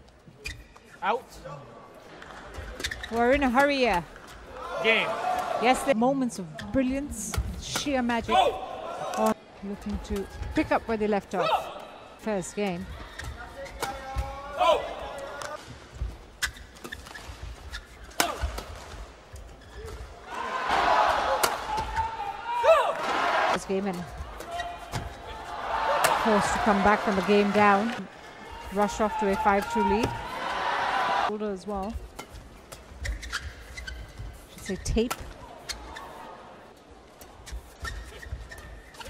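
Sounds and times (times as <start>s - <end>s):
shoe squeaks on court: 0.4s - 1.0s, 16.4s - 18.4s, 32.8s - 36.3s, 37.4s - 39.0s
rackets hitting shuttlecock: 18.1s - 18.9s
crowd cheering and clapping: 20.3s - 23.6s, 25.4s - 28.0s, 30.2s - 31.3s.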